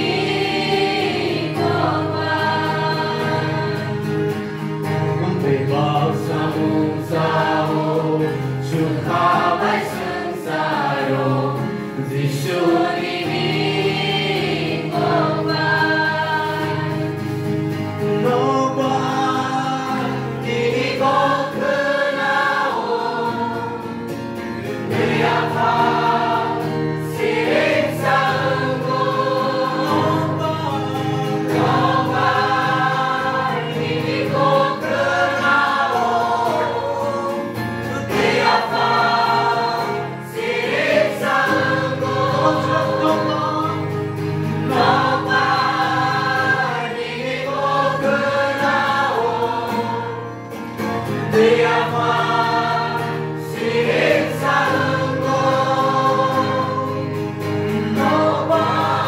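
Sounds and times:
voices singing worship song: 0:00.0 - 0:59.0.

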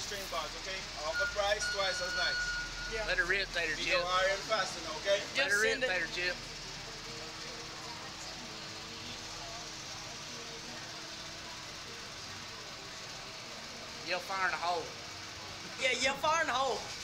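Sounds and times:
faint distant voices: 0:00.0 - 0:17.0.

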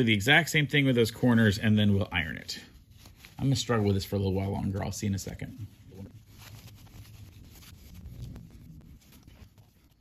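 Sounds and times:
fabric rubbing and rustling: 0:00.0 - 0:10.0.

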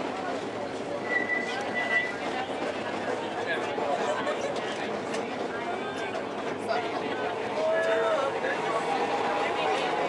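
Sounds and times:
passengers chattering: 0:00.0 - 0:10.0
streetcar wheels squealing on rails: 0:00.8 - 0:03.4.

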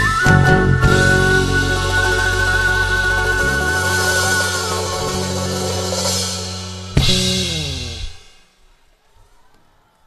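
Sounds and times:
live band final hit: 0:00.0 - 0:08.6.

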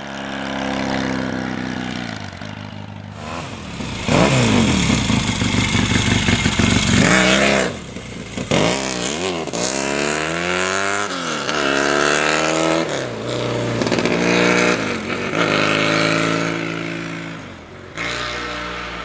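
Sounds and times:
motorcycle engine accelerating: 0:00.0 - 0:19.0.

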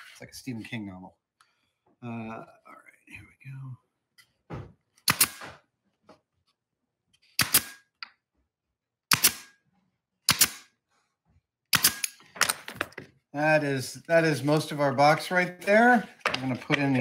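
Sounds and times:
pneumatic nailer firing into wood: 0:05.0 - 0:05.6, 0:07.4 - 0:07.9, 0:09.1 - 0:09.6, 0:10.3 - 0:10.7, 0:11.7 - 0:12.6.

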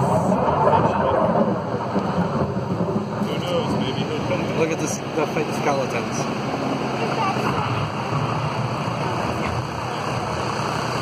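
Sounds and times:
hay wagon rolling: 0:00.0 - 0:11.0
low engine rumble: 0:00.0 - 0:11.0.

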